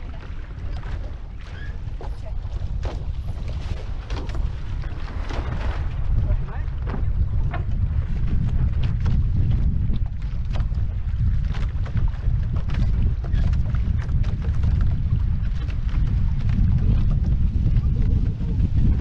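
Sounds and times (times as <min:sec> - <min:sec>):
water splashing against hulls: 0:00.0 - 0:19.0
wind buffeting microphone: 0:00.0 - 0:19.0.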